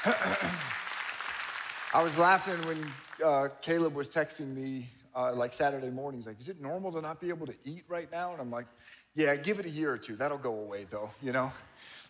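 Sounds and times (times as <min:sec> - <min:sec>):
congregation applauding: 0:00.0 - 0:03.6.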